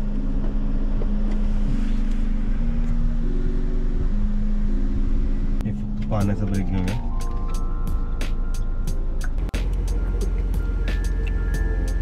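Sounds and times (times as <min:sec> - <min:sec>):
low rumble inside car cabin: 0:00.0 - 0:12.0
low tones shifting pitch: 0:00.0 - 0:12.0.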